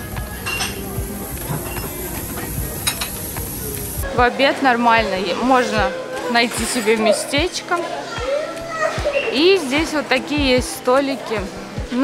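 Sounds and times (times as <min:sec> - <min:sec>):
murmur of voices: 0:00.0 - 0:12.0
utensils clinking on metal dishes: 0:00.4 - 0:03.8, 0:05.3 - 0:07.4.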